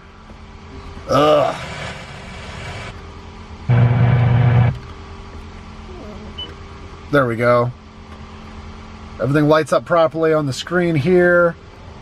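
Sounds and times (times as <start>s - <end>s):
loud steady buzzing tone: 0.0s - 7.0s
speaker hiss: 1.1s - 3.0s, 3.7s - 4.8s.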